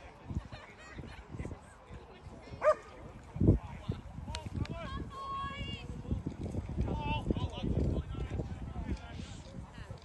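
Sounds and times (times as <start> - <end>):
dog barking: 2.6 - 2.9.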